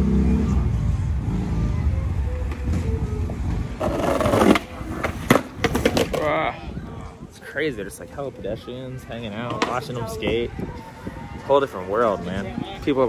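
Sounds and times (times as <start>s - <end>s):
low engine rumble: 0.0s - 4.8s
skateboard wheels rolling on concrete: 2.0s - 13.0s
loud skateboard scrape: 3.8s - 6.2s
skateboard clacking on ground: 3.8s - 6.4s, 9.4s - 10.0s.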